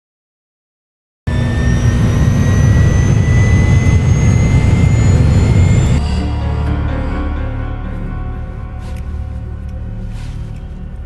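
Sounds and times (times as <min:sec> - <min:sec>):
jet engines spooling up: 0:01.3 - 0:07.3
dramatic film music: 0:01.3 - 0:11.0.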